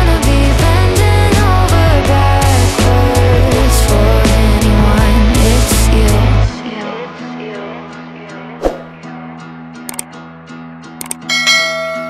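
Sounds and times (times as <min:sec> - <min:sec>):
background pop music: 0:00.0 - 0:10.2
mouse clicks: 0:11.0 - 0:11.2
bell chime: 0:11.2 - 0:12.0.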